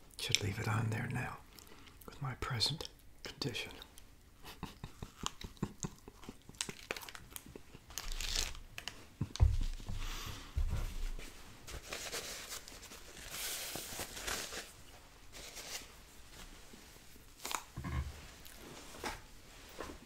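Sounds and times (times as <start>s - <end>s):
paper napkin crinkling: 6.6s - 9.0s, 11.0s - 17.7s.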